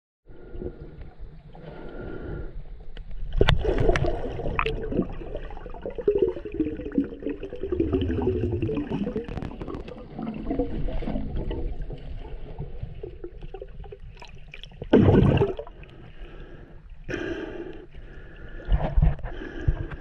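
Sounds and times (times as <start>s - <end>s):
water sloshing: 3.0s - 16.6s.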